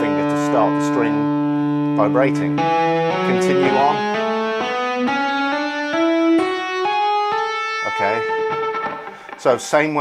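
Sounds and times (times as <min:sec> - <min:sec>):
electric guitar hammer-on notes: 0:00.0 - 0:10.0.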